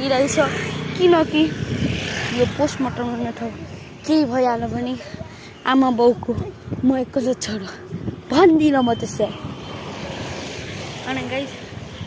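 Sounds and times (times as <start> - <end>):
distant engine rush: 0.0 - 5.7.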